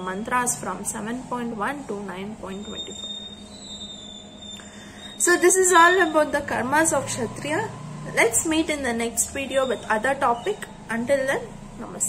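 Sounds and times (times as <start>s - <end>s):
high-pitched electronic whine: 0.0s - 12.0s.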